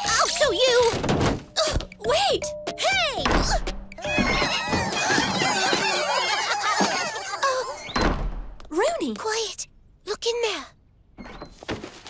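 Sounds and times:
background music: 0.0s - 7.8s.

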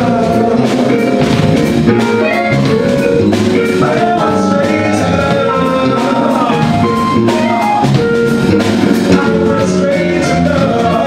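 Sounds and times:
man singing: 0.0s - 1.3s, 3.6s - 7.7s, 8.6s - 11.0s
soul jazz band playing: 0.0s - 11.0s.

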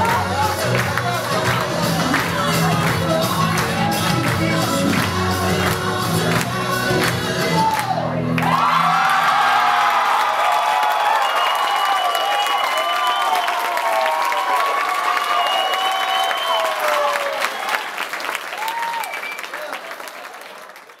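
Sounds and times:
crowd applauding: 0.0s - 21.0s
voices cheering: 7.5s - 20.1s.

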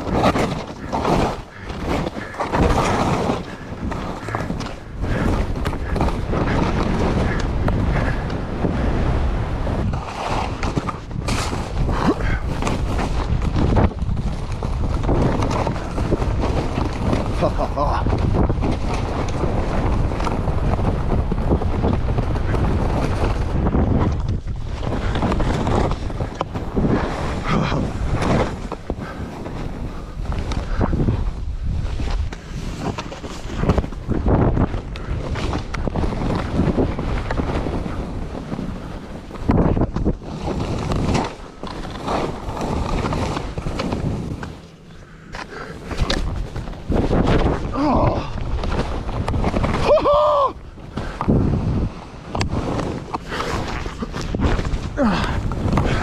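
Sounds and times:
skis scraping over snow: 0.0s - 56.0s
wind buffeting microphone: 0.0s - 56.0s.

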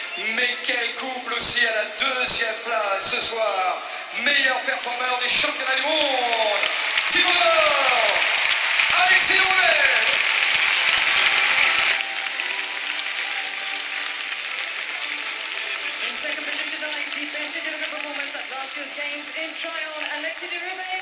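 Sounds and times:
crowd applauding: 3.9s - 21.0s
music over sound system: 5.3s - 18.9s.

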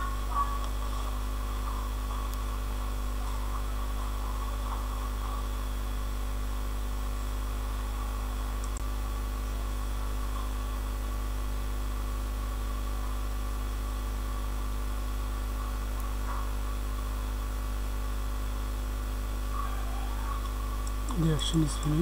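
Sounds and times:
low electrical hum: 0.0s - 22.0s.

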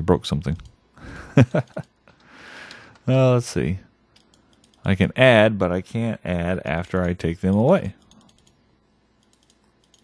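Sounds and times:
computer mouse clicks: 0.4s - 0.8s, 4.1s - 4.9s, 7.0s - 8.6s, 9.2s - 10.0s.

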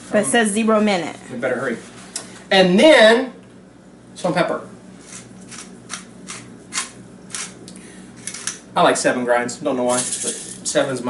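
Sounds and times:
pepper mill grinding: 5.0s - 7.6s, 9.9s - 10.8s.

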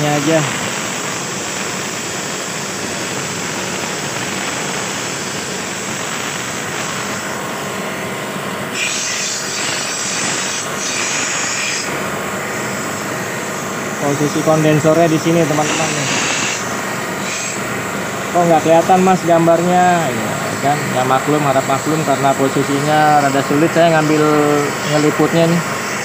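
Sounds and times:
high-pressure water jet hissing: 0.0s - 26.0s.

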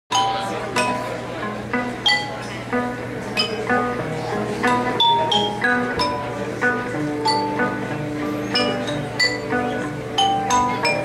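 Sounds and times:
xylophone notes: 0.1s - 1.2s, 4.7s - 11.0s
guitar: 0.1s - 11.0s.

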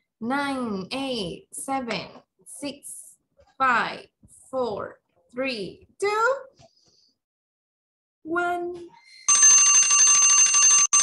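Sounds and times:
fast-repeating alarm bell: 9.3s - 11.0s.

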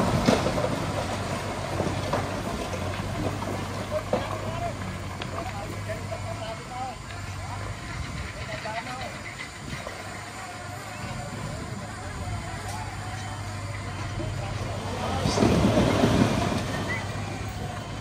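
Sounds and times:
diesel engine running: 0.0s - 18.0s
people talking: 1.9s - 18.0s.

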